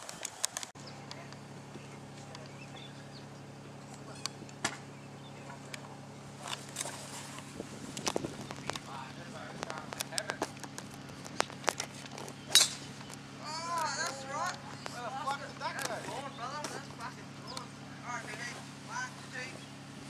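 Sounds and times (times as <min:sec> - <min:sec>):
low hum: 0:00.0 - 0:20.0
golf club striking ball: 0:12.4 - 0:13.2.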